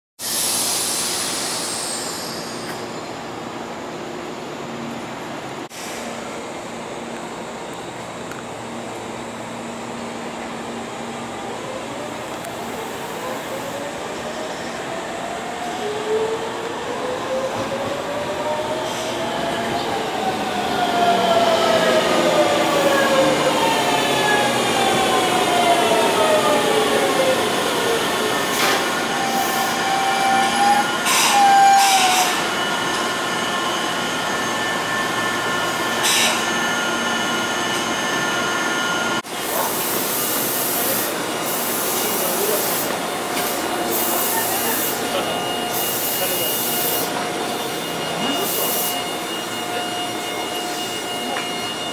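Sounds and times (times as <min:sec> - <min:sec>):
steady high tones from train: 0:00.2 - 0:51.9
train doors opening click: 0:28.5 - 0:28.9, 0:30.4 - 0:32.4
train traction motors whining: 0:40.4 - 0:51.9
brake squeal: 0:44.4 - 0:51.9.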